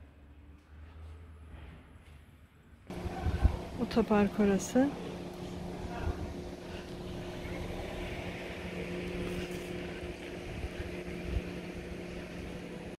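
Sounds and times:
low motor hum: 2.9s - 13.0s
wind rumbling on microphone: 5.6s - 12.9s.

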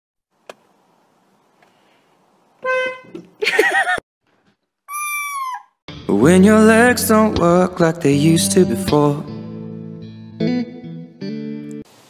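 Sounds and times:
car horn honk: 2.6s - 3.2s.

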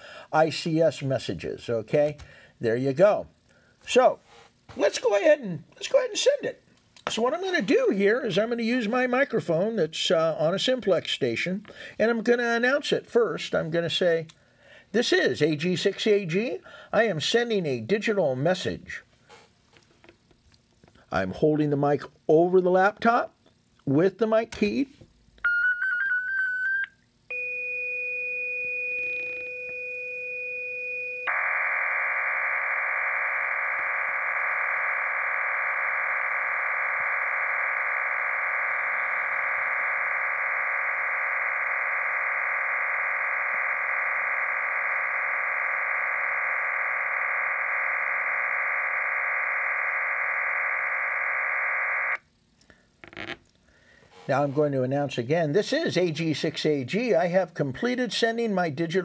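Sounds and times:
two steady tones: 27.3s - 50.4s
wavering tone: 32.4s - 49.7s.

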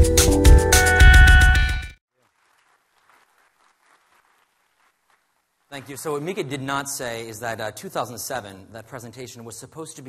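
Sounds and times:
faint audience applause: 2.1s - 5.8s.

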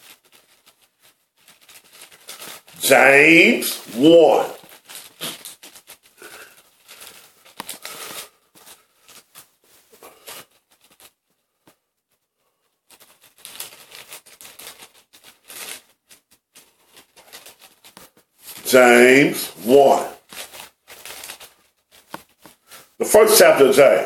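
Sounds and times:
thin pages being flipped: 0.0s - 11.8s, 12.8s - 18.7s, 19.6s - 23.0s.

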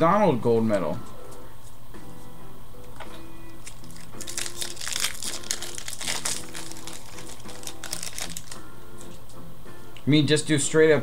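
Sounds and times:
wrappers crinkling: 3.6s - 8.6s.

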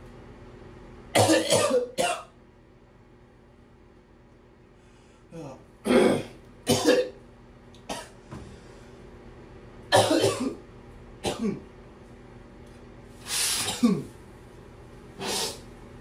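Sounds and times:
man coughing: 1.2s - 2.3s, 5.9s - 7.2s, 9.9s - 10.6s, 11.2s - 11.7s, 13.6s - 14.2s.

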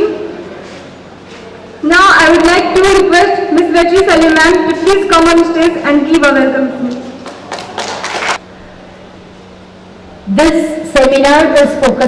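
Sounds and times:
faint sound system hum: 0.0s - 12.0s.

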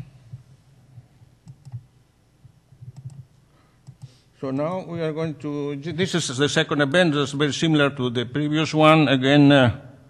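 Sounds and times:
computer mouse clicks: 1.4s - 1.9s, 2.8s - 4.2s.

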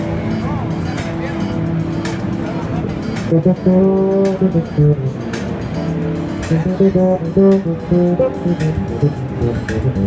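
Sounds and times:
crowd chatter: 0.0s - 10.0s
electric bass sustained notes: 0.0s - 10.0s.

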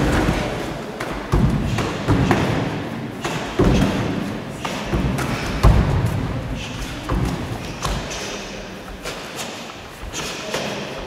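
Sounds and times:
punches and kicks on padded gloves: 4.9s - 6.2s.

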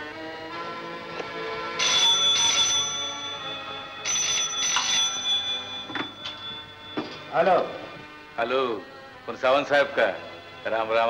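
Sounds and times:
telephone bell ringing: 1.8s - 7.9s.

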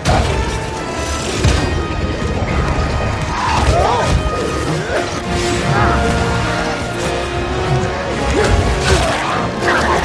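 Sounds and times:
orchestral score: 0.0s - 10.0s.

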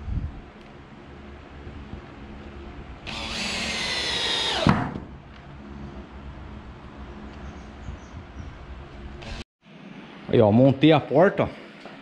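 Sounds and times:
cordless drill driving into wood: 3.0s - 5.1s.

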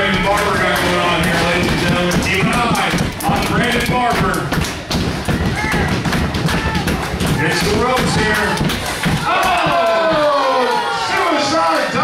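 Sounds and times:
thuds and knocks of brawling: 0.0s - 10.5s
voices talking and shouting: 5.2s - 12.0s.

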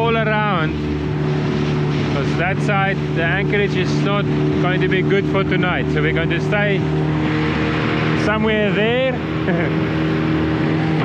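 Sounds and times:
outboard motor running: 0.0s - 11.0s
water rushing: 0.0s - 11.0s
wind: 0.0s - 11.0s
person laughing: 9.4s - 9.9s.

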